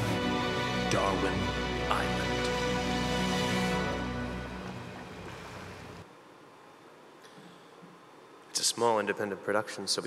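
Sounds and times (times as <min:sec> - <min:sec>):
documentary music: 0:00.0 - 0:06.0
faint hall room noise: 0:00.0 - 0:10.0.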